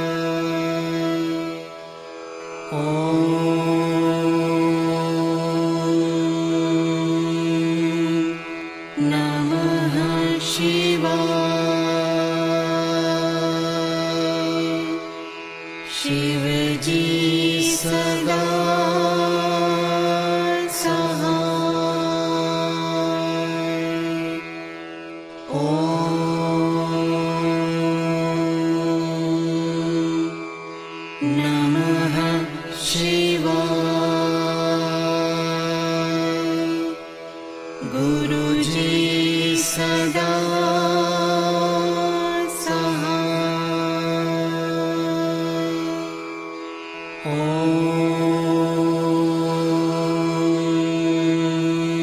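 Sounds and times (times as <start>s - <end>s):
mantra chanting: 0.0s - 52.0s.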